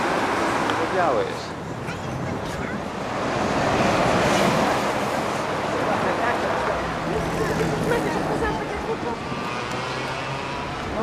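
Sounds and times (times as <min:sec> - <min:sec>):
sea waves washing on shore: 0:02.4 - 0:11.0.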